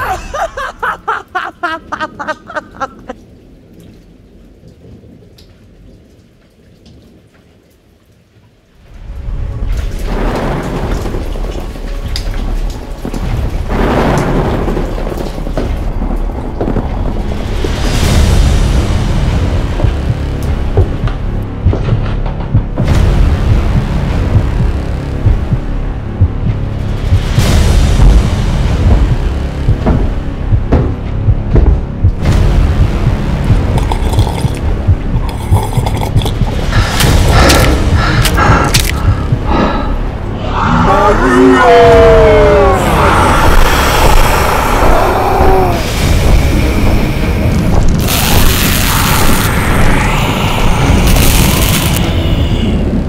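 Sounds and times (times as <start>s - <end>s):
background music: 0.0s - 3.2s, 8.9s - 53.0s
steady rain: 0.0s - 53.0s
rolling thunder: 9.1s - 33.9s.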